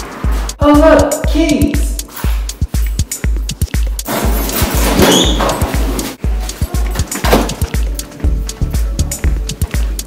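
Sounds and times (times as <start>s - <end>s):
music with heavy bass beat: 0.0s - 10.0s.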